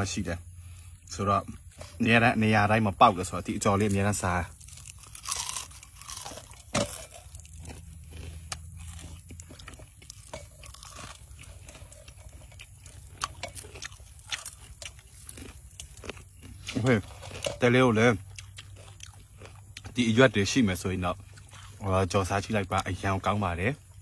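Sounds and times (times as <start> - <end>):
person chewing crispy leaves: 0.1 - 24.0.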